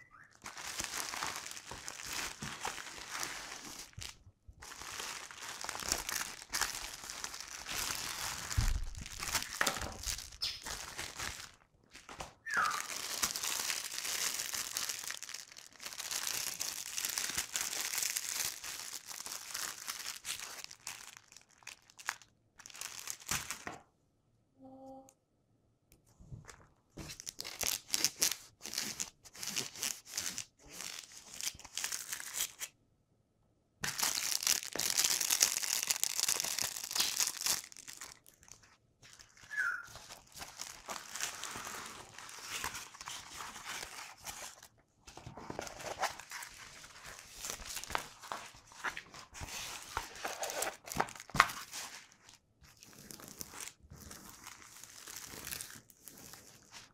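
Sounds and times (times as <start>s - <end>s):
plastic packaging crinkling: 0.4s - 23.8s, 27.0s - 32.7s, 33.8s - 56.9s.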